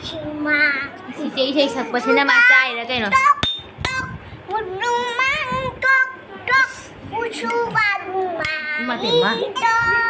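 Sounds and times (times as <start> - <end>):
girl chanting sing-song: 0.0 - 10.0.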